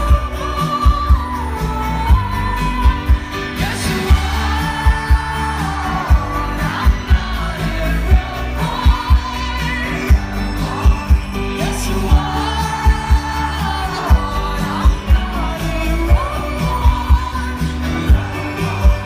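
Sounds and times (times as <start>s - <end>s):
band playing pop music: 0.0s - 19.0s
woman singing: 0.0s - 19.0s.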